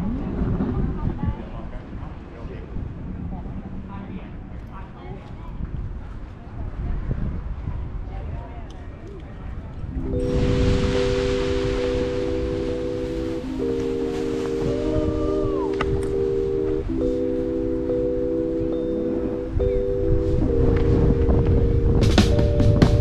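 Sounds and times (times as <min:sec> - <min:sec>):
wind rumbling on microphone: 0:00.0 - 0:23.0
music of long held chords: 0:09.9 - 0:23.0.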